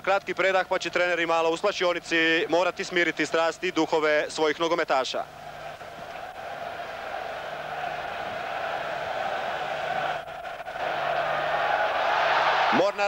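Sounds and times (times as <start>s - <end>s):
stadium crowd murmur: 5.2s - 13.0s.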